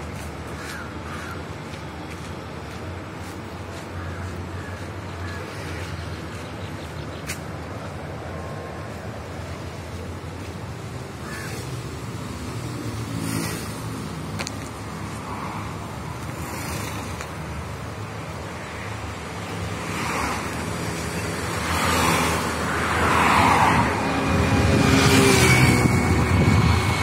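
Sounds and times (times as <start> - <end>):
cars passing: 0.0 - 27.0
low traffic rumble: 0.0 - 27.0.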